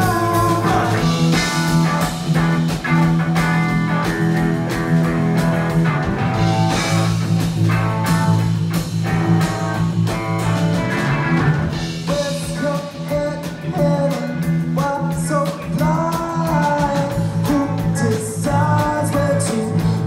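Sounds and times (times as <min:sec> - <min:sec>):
bass guitar: 0:00.0 - 0:20.0
drum kit beat: 0:00.0 - 0:20.0
electric guitar: 0:00.0 - 0:20.0.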